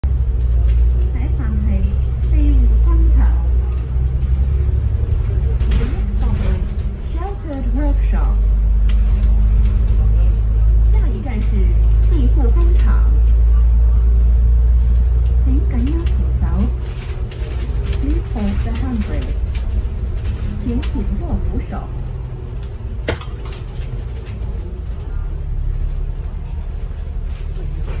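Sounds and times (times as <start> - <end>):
bus rumbling from inside: 0.0 - 28.0.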